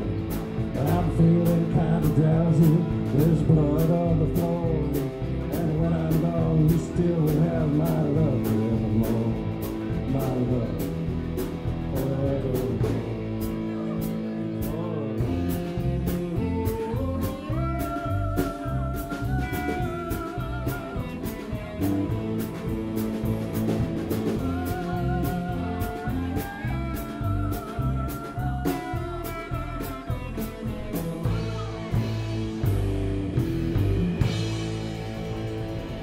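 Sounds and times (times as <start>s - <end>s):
drums with cymbal beat: 0.0s - 36.0s
electric bass: 0.0s - 36.0s
electric guitar: 0.0s - 36.0s
woman singing: 14.7s - 21.8s, 24.2s - 32.1s.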